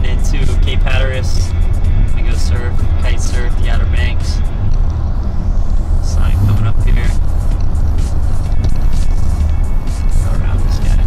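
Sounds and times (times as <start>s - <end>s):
car road and engine rumble: 0.0s - 11.0s
music: 0.0s - 11.0s
indistinct voices: 4.0s - 7.3s.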